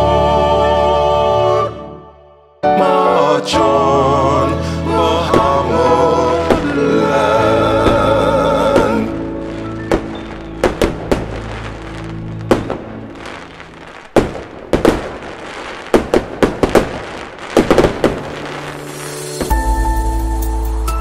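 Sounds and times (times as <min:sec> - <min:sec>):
fireworks bangs and crackles: 0:05.3 - 0:05.8, 0:06.4 - 0:20.2.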